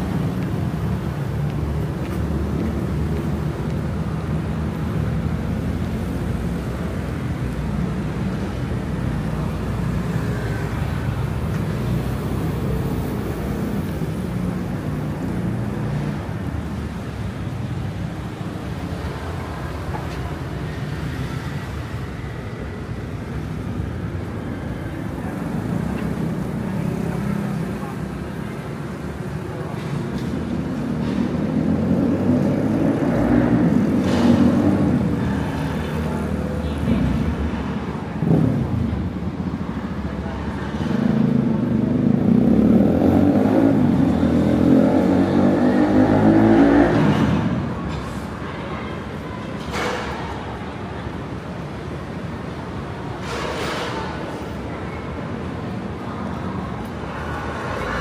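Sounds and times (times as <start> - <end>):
cars and motorbikes driving past: 0.0 - 58.0
people talking: 47.8 - 51.5.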